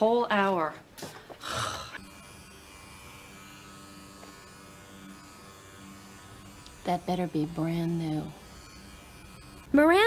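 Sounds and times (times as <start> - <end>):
electric massager buzzing: 1.1 - 10.0.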